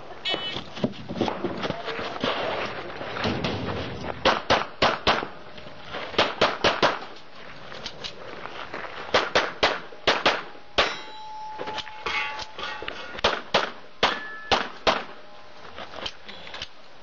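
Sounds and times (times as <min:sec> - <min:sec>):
pistol shots: 0:04.2 - 0:05.3, 0:06.2 - 0:07.1, 0:09.1 - 0:11.1, 0:13.2 - 0:15.2
metallic ring of steel target: 0:10.8 - 0:13.4, 0:14.0 - 0:14.8.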